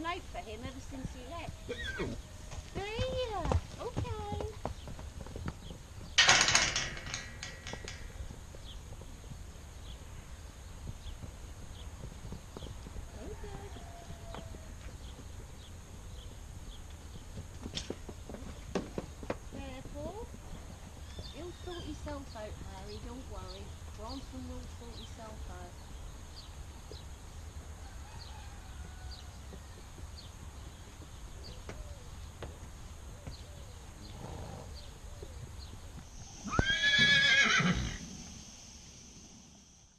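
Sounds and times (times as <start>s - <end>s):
horse hooves on packed dirt: 0.0s - 38.3s
horse neighing: 1.6s - 2.2s, 36.3s - 38.1s.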